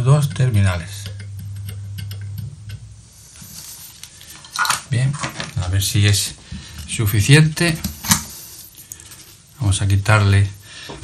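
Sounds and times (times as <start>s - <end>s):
low hum: 0.0s - 3.5s
solder crackling and hissing: 2.4s - 11.0s.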